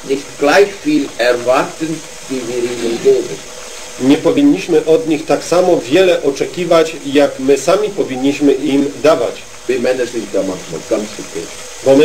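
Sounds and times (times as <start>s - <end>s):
man speaking quietly: 2.3s - 3.4s.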